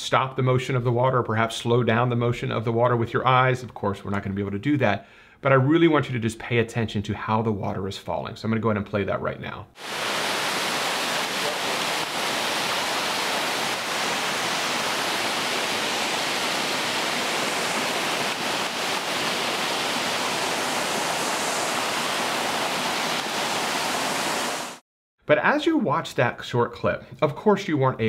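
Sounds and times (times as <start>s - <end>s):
waterfall rushing over rocks: 9.8s - 24.8s.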